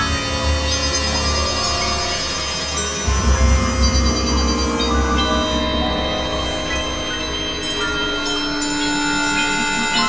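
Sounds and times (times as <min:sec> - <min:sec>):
deep low drone: 0:00.0 - 0:10.0
sustained synthesizer tones: 0:00.0 - 0:10.0.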